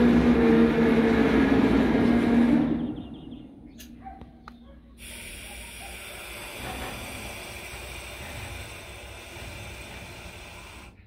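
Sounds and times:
freight train wheels rumbling: 0.0s - 11.0s.

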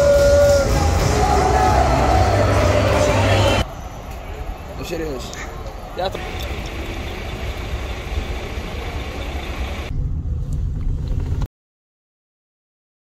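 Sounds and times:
diesel engine idling: 6.2s - 9.9s.

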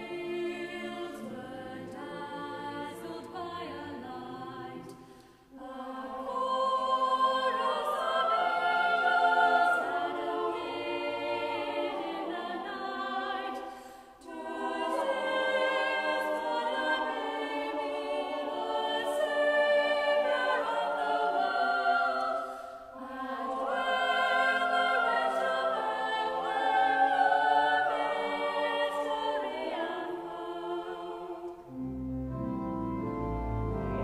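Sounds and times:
choir singing a carol: 0.0s - 34.0s.

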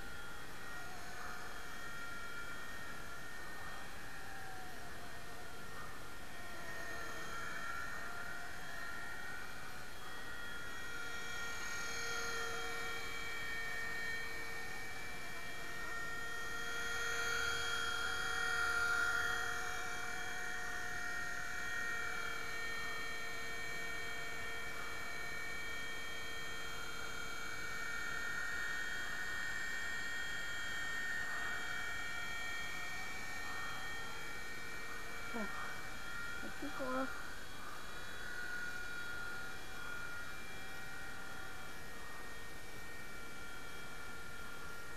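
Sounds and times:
helicopter motor and rotor whine: 0.0s - 44.9s.

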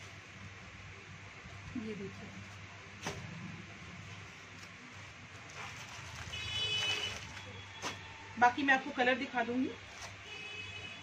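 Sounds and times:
plastic packaging crinkling: 4.4s - 8.1s.

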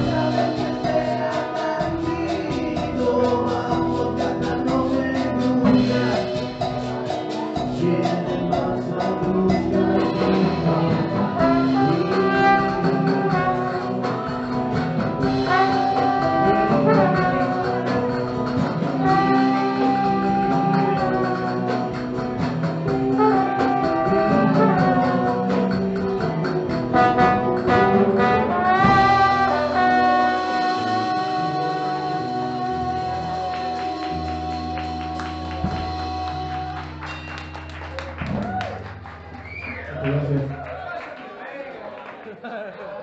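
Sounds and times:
trombone melody: 0.0s - 37.6s
live band backing: 0.0s - 40.8s.

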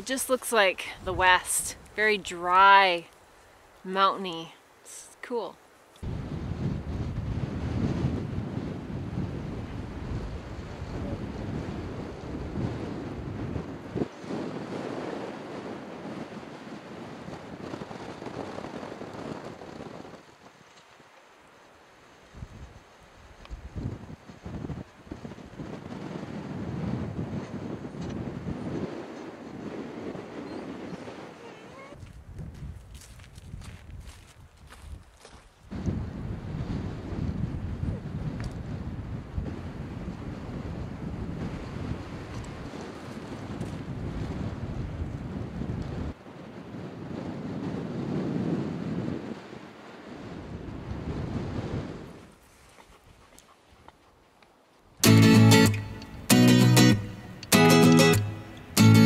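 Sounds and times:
wind gusting over microphone: 0.0s - 3.1s, 5.3s - 21.1s, 22.0s - 53.2s.

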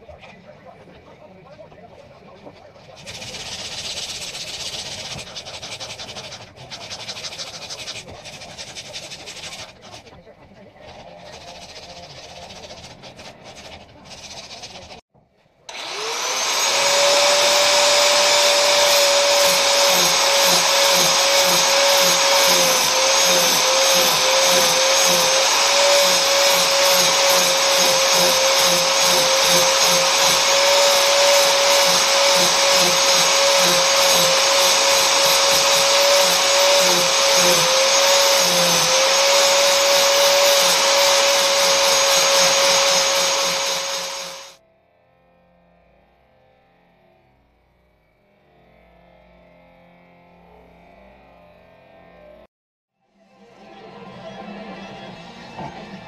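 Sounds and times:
power tool shaping wood: 3.0s - 10.0s, 15.7s - 44.6s.

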